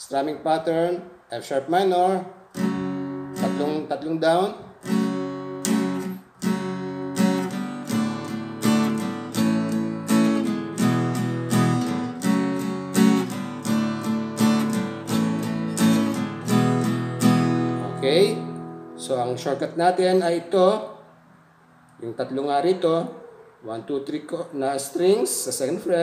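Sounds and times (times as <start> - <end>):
acoustic guitar strumming: 2.5 - 19.9.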